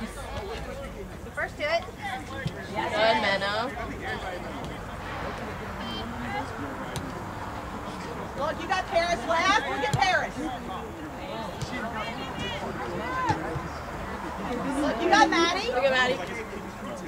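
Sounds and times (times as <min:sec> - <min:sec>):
outdoor background noise: 0:00.0 - 0:17.0
voices calling out and talking: 0:00.0 - 0:17.0.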